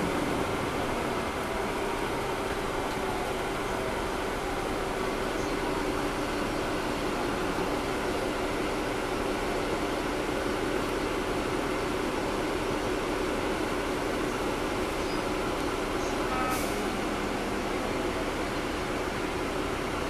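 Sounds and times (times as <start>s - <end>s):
bus engine and fans humming: 0.0s - 20.0s.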